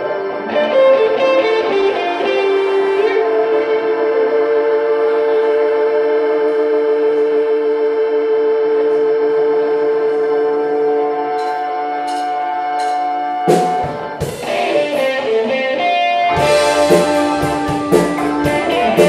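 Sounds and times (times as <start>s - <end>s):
live blues band: 0.0s - 7.8s, 10.5s - 19.0s.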